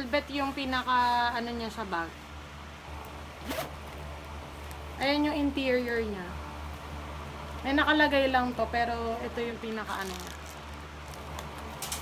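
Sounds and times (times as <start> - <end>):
zipper pulled open: 3.4 - 3.9.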